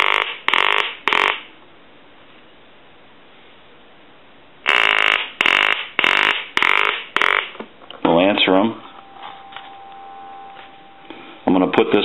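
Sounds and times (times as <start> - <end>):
faint telephone handset tone: 9.0 - 11.0.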